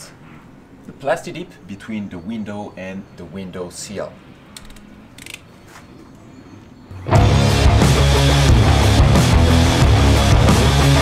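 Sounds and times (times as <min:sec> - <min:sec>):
utility knife blade ratcheting clicks: 0:04.6 - 0:05.4.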